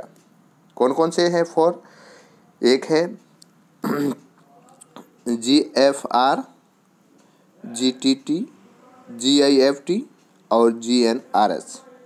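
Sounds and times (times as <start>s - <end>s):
person clearing throat: 3.8s - 4.3s.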